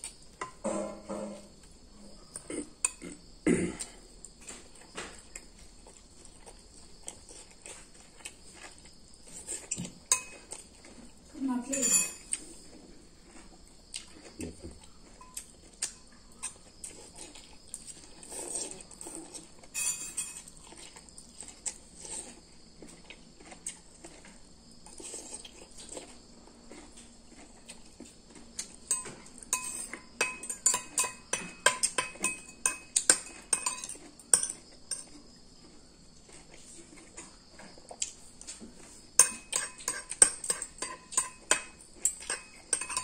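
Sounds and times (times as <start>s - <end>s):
cutlery clinking on ceramic bowl: 9.7s - 10.5s, 11.7s - 12.3s, 19.7s - 20.5s, 28.9s - 35.1s, 39.2s - 43.0s.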